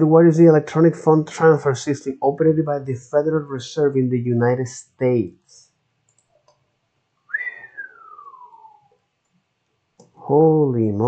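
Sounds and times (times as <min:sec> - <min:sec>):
person whistling a falling note: 0:07.3 - 0:08.9.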